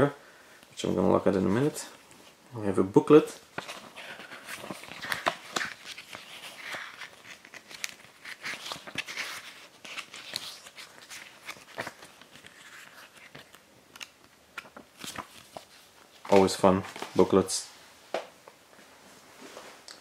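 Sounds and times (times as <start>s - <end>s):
paper pages flipping: 3.4s - 17.4s.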